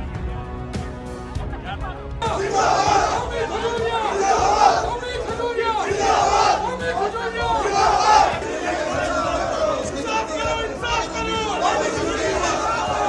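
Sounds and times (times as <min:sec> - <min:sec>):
crowd chanting slogans: 0:02.2 - 0:13.0.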